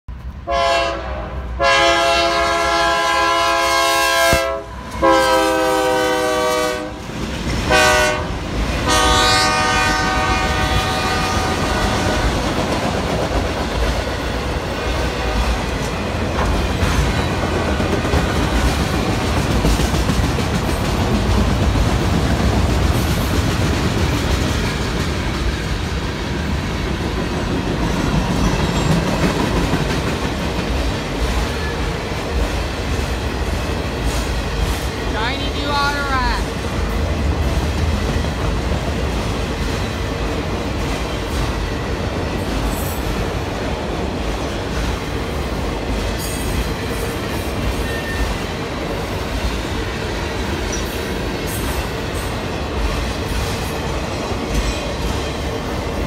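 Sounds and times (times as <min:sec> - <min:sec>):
locomotive horn blasts: 0:00.4 - 0:07.0, 0:07.7 - 0:12.4
freight cars rumbling and clacking: 0:12.2 - 0:56.0.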